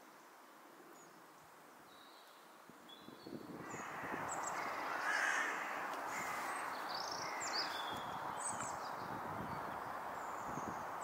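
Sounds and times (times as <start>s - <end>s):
harsh caw-like bird call: 3.6s - 8.2s.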